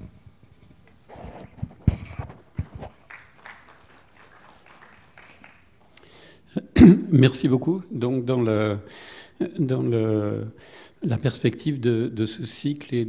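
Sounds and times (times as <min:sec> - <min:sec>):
man speaking: 0:06.5 - 0:13.0.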